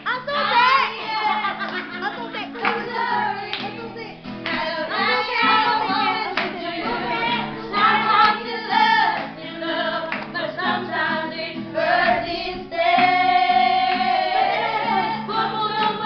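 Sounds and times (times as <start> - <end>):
acoustic guitar: 0.0 - 16.0
women singing together: 0.0 - 16.0.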